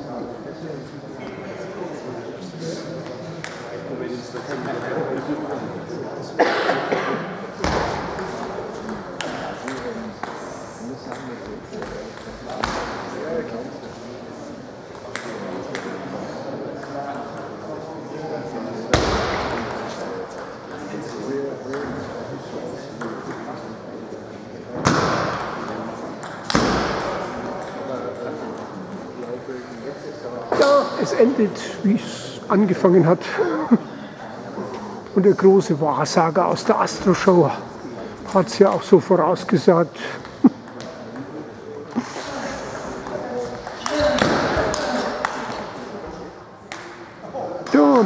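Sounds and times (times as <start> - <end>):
murmur of voices: 0.0 - 48.0
table tennis ball bouncing: 7.6 - 10.5, 11.1 - 13.0, 24.8 - 29.4, 43.0 - 45.6.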